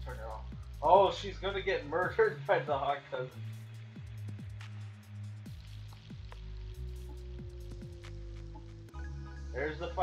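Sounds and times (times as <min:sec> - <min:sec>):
low music drone: 0:00.0 - 0:10.0.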